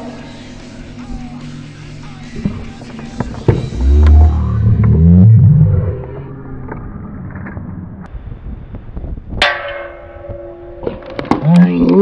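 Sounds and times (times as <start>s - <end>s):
sharp metallic clang: 9.4s - 11.5s.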